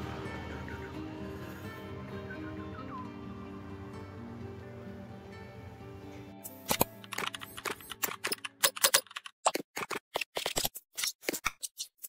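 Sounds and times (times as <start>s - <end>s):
background music: 0.0s - 8.9s
keyboard key clicks: 6.7s - 9.3s.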